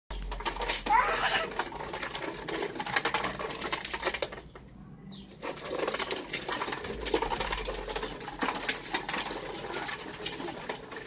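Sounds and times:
tricycle wheels rattling on paving: 0.1s - 11.0s.

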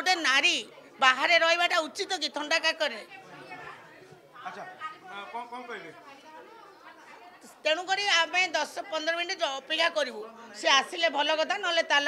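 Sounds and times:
faint background chatter: 0.0s - 12.0s.

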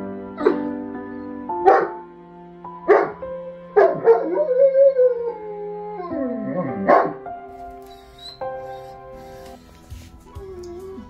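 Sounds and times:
background music with chords: 0.0s - 11.0s
dog howling and whining: 3.8s - 7.2s, 7.9s - 9.0s, 10.3s - 11.0s.

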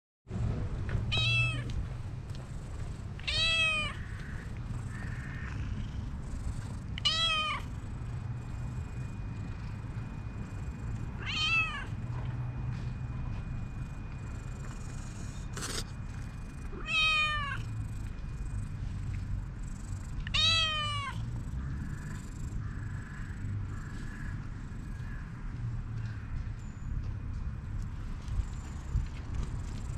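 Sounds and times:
cat meowing: 1.1s - 1.8s, 3.2s - 5.8s, 7.0s - 7.7s, 11.2s - 12.0s, 16.8s - 17.6s, 20.2s - 21.2s.

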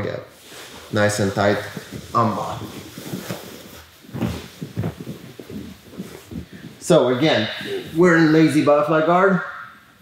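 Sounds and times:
fabric rustling: 0.4s - 8.1s.

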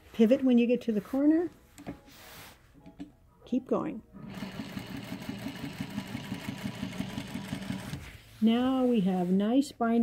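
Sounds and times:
sewing machine stitching: 4.2s - 8.2s.

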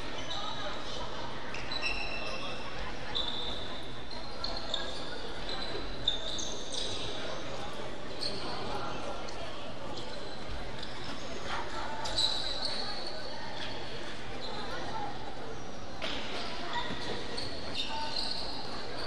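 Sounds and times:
echoing murmur of voices: 0.0s - 19.0s
rubber soles squeaking on floor: 3.1s - 7.2s, 12.0s - 13.2s, 16.7s - 19.0s.

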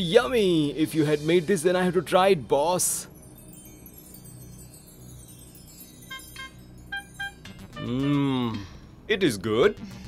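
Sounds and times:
chime-like bell music: 1.2s - 9.0s
ringing chime strikes: 2.9s - 8.2s.

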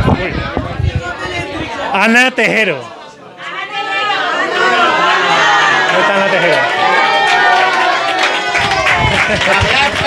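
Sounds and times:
people talking over one another: 0.0s - 10.0s.

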